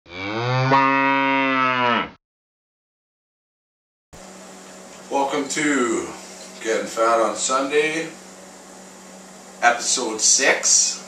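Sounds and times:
cow mooing: 0.1 - 2.2.

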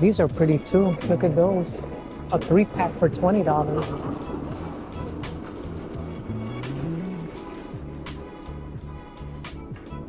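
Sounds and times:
music with steady beat and bass: 0.0 - 10.0.

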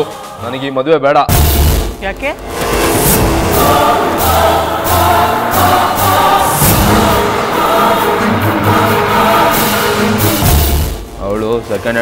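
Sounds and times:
choir-like singing: 0.0 - 0.6, 2.6 - 11.1
percussive accents: 1.3 - 12.0
sustained tones: 2.0 - 11.2.

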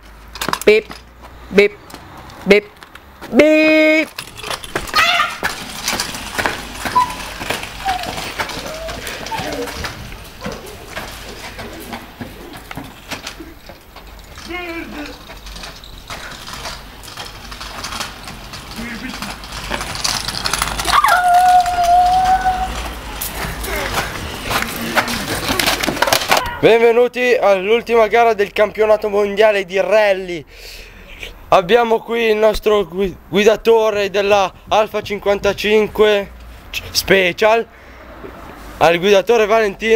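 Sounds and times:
clicks and scrapes on pavement: 0.0 - 26.6
boys shouting: 4.9 - 5.5, 20.8 - 25.4.

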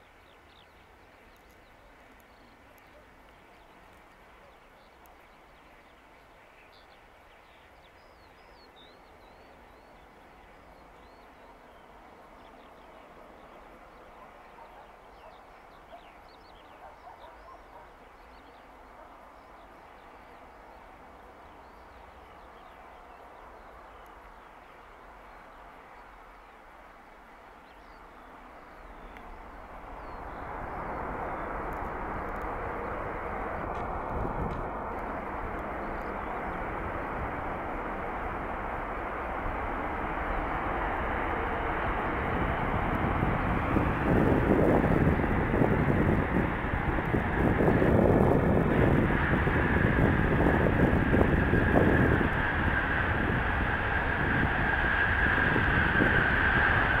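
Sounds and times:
high engine whine: 27.3 - 57.0
jet engines roaring: 28.3 - 57.0.

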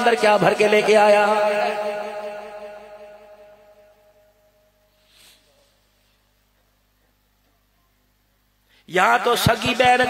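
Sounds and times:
man's voice echoing: 0.0 - 4.2, 8.7 - 10.0.

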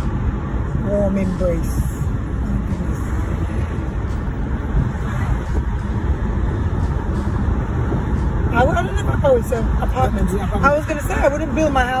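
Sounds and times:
car tyres and engine rumble: 0.0 - 12.0.

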